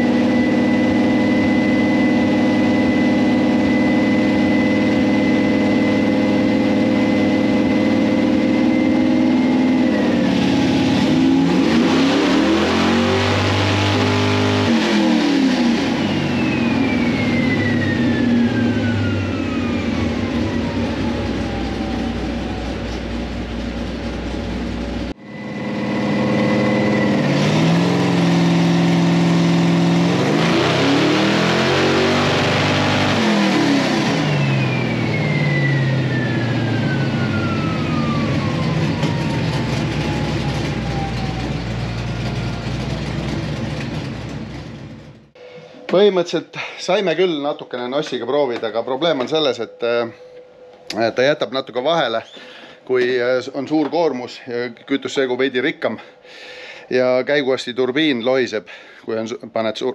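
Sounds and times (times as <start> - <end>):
engine revving on dyno: 0.0 - 45.4
drivetrain whine: 0.0 - 59.9.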